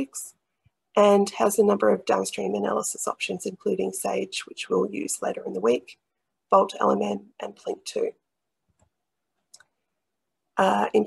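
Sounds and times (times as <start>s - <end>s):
woman speaking: 0.0s - 0.3s, 1.0s - 8.2s, 10.6s - 11.0s.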